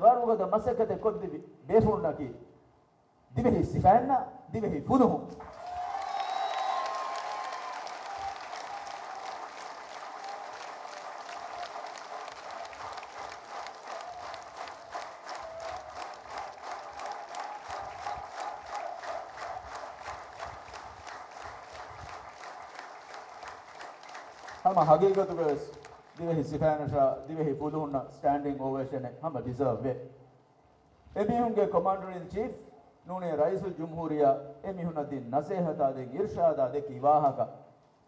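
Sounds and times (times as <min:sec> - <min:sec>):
crowd cheering: 0:05.4 - 0:26.4
audience applauding: 0:05.4 - 0:26.5.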